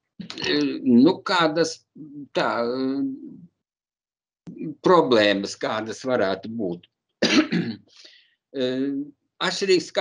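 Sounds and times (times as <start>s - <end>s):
man speaking: 0.2s - 3.5s, 4.5s - 6.9s, 8.6s - 10.0s
man clearing his throat: 7.2s - 7.9s.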